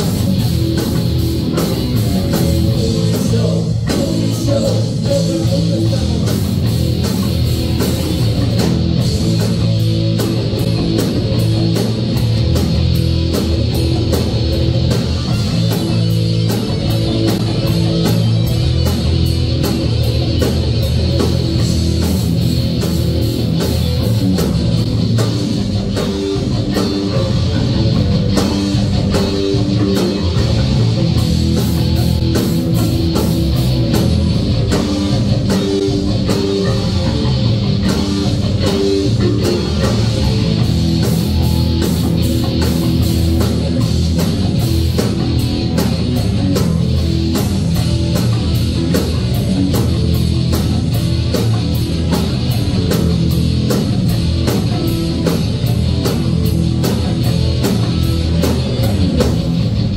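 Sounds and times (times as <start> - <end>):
distorted electric guitars: 0.0 - 59.9
fast drum beat: 0.0 - 59.9.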